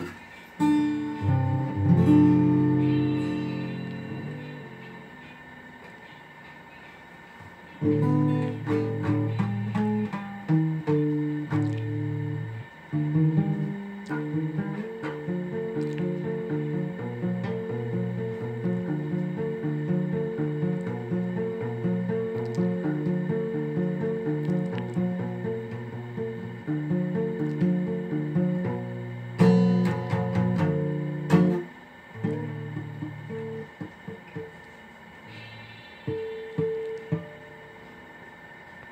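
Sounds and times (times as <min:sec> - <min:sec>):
plucked guitar melody: 0:00.0 - 0:06.2, 0:07.5 - 0:35.4, 0:36.0 - 0:38.0
strummed guitar chords: 0:00.0 - 0:38.8.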